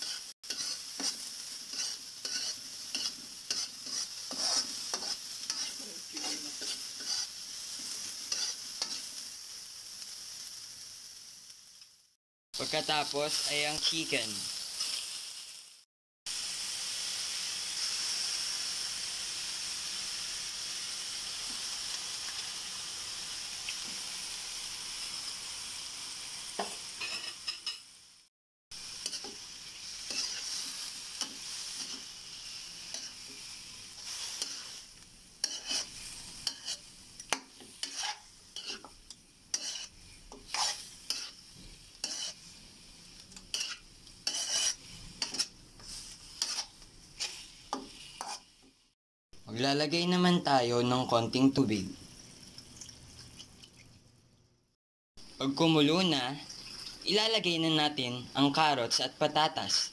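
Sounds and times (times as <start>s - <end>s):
utensil scraping a wok: 0.0s - 9.3s, 28.9s - 48.7s, 59.6s - 59.9s
chicken sizzling in oil: 0.0s - 49.0s, 55.2s - 59.9s.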